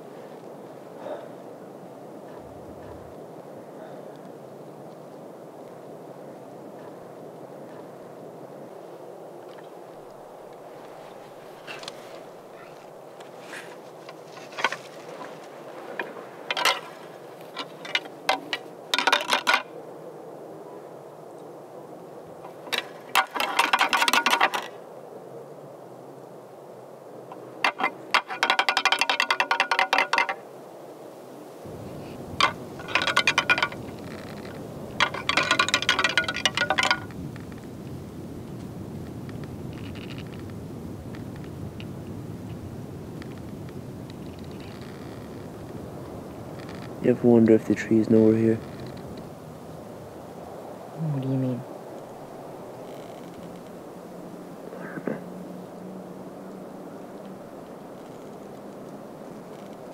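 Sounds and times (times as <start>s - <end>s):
antlers clacking together: 13.5s - 19.7s, 22.4s - 24.7s, 27.3s - 30.4s, 32.4s - 37.2s.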